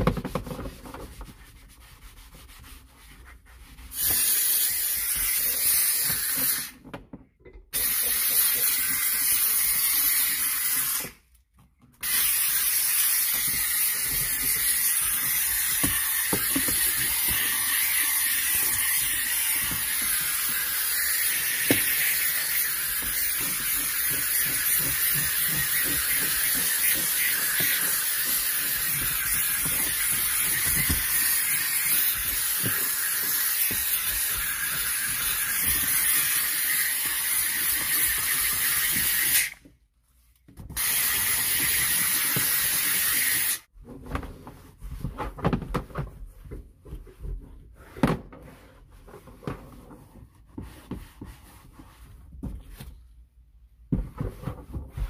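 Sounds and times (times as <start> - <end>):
steam cleaner hissing: 3.9 - 6.7, 7.8 - 11.2, 12.0 - 39.6, 40.8 - 43.6.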